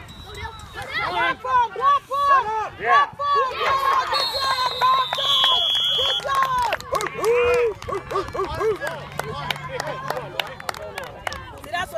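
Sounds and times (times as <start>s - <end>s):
spectators shouting and cheering: 0.0s - 11.9s
referee's whistle blast: 4.1s - 6.3s.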